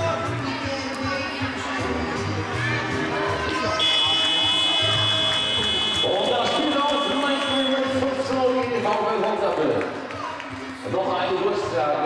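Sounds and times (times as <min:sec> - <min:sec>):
scoreboard buzzer: 0:03.8 - 0:08.0.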